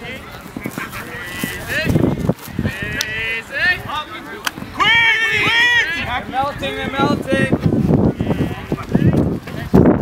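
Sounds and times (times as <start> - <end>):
people calling out: 0.0 - 9.2
running footsteps on grass: 0.0 - 9.9.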